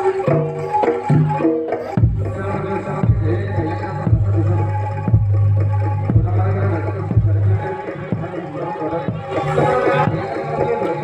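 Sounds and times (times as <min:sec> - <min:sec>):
traditional music over loudspeakers: 0:00.0 - 0:11.0.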